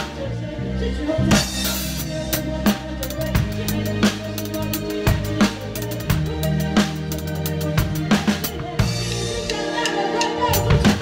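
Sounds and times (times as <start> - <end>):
band bass and accompaniment: 0.0 - 11.0
rock drum kit backbeat: 1.2 - 11.0.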